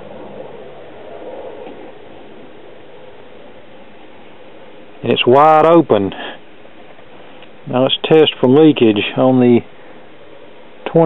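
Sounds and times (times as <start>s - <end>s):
faint hum: 0.0s - 11.0s
room tone hiss: 0.0s - 11.0s.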